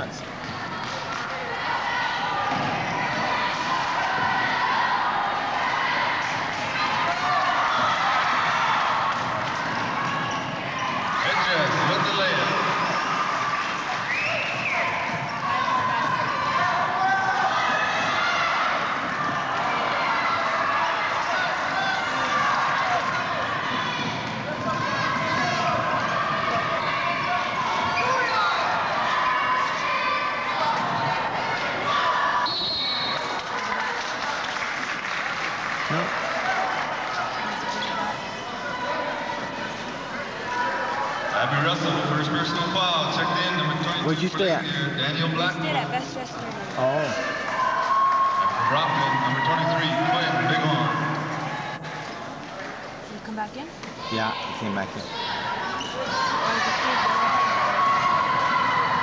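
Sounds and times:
murmur of spectators chatter: 0.0 - 59.0.

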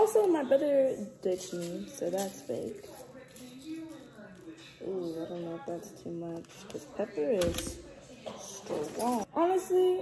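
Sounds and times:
pepper shaken from a plastic jar: 1.3 - 4.8.

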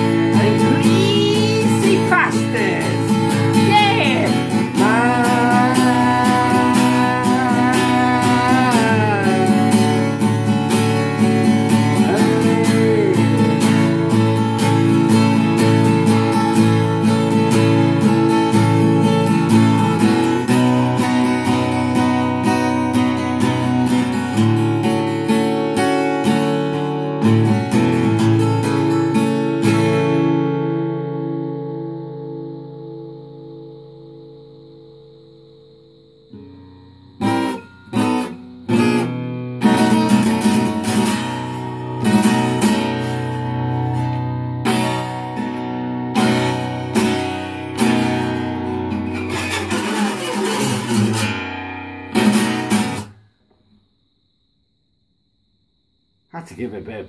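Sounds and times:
acoustic guitar strumming: 0.0 - 53.9.

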